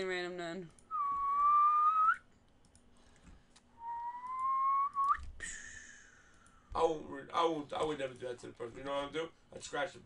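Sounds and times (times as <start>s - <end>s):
person whistling: 0.9s - 2.2s, 3.8s - 5.3s.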